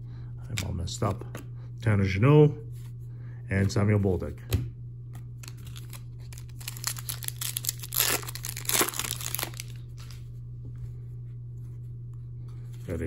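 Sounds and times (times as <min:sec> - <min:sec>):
foil wrapper tearing and crinkling: 0:05.4 - 0:10.2.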